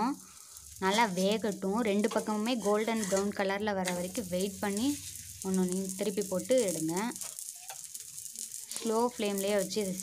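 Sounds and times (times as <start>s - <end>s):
oil sizzling on a griddle: 0.0s - 10.0s.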